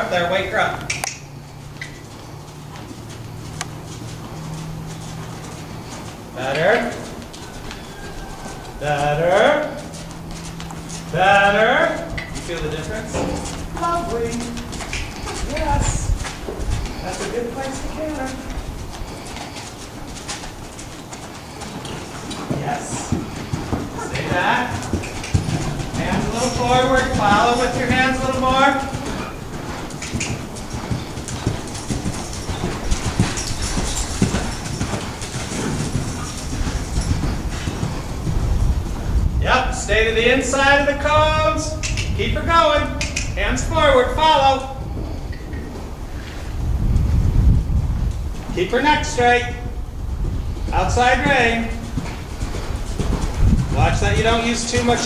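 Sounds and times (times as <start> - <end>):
horse hoofbeats on dirt: 0.0 - 55.0
bird calling: 0.8 - 38.6
wind rumble on microphone: 11.0 - 20.8, 22.4 - 55.0.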